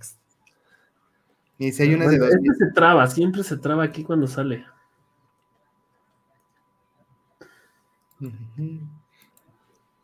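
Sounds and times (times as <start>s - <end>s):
faint steady tone: 0.2s - 10.0s
computer mouse clicks: 9.1s - 9.9s.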